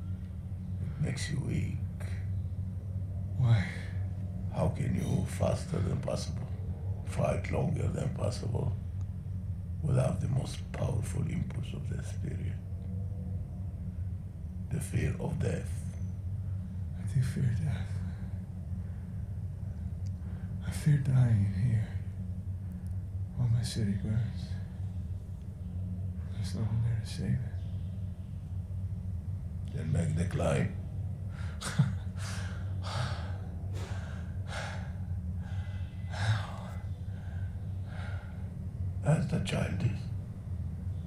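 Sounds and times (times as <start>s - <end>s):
low hum: 0.0s - 41.0s
low steady rumble: 0.0s - 41.0s
man breathing hard: 31.3s - 38.7s.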